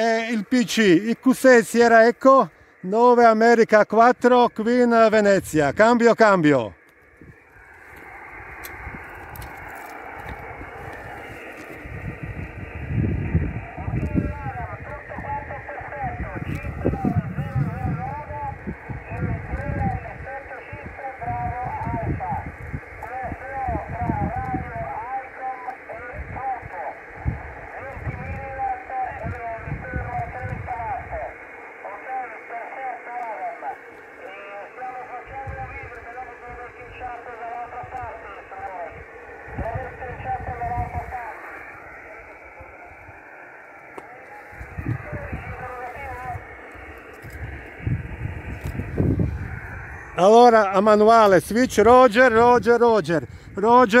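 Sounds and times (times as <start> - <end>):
radio noise floor: 0.0 - 54.0
radio speech: 0.0 - 54.0
wind rumbling on microphone: 6.7 - 31.6, 35.2 - 43.4, 44.3 - 54.0.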